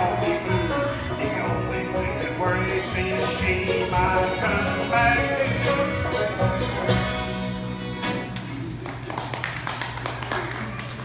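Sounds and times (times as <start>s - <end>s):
bluegrass song: 0.0s - 8.8s
audience clapping: 8.3s - 11.0s.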